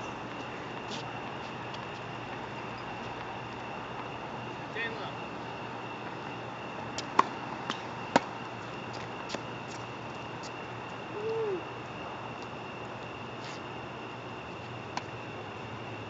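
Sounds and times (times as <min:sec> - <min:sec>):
short low hoot: 0:11.1 - 0:11.6.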